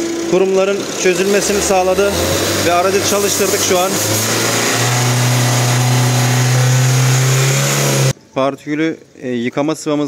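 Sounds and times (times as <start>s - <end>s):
diesel engine running: 0.0s - 8.1s.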